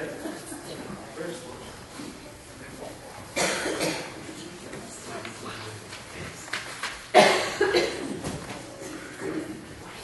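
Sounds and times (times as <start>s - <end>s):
low background murmur: 0.0s - 10.0s
person coughing: 3.4s - 4.2s, 7.2s - 8.3s.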